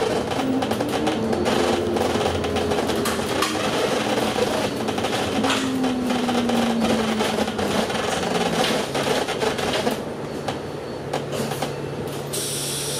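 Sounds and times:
bus engine droning: 0.0 - 12.9.

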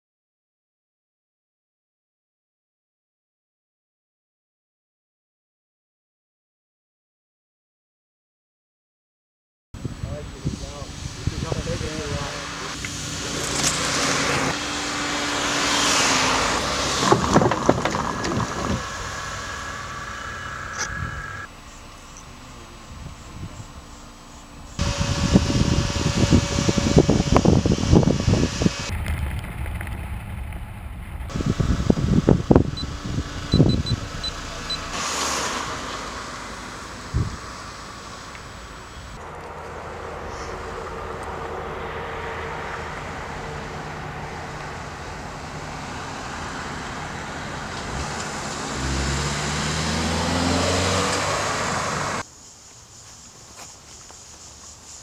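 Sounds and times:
engine and road hum: 9.8 - 55.0
engine accelerating: 10.2 - 52.2
cars rolling past: 11.4 - 22.9, 23.6 - 52.3.

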